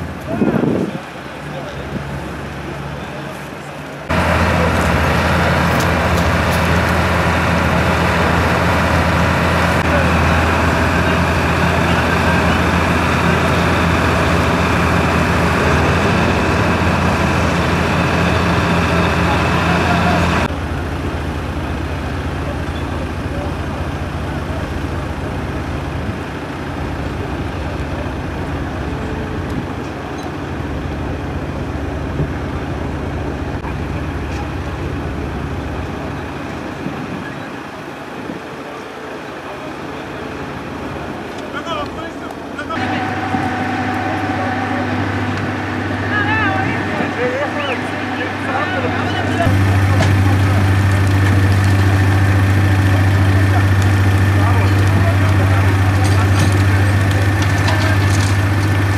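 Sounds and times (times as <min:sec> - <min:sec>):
faint voices: 0:00.2 - 0:20.6, 0:33.6 - 0:58.9
vehicle engine running: 0:01.0 - 0:58.9.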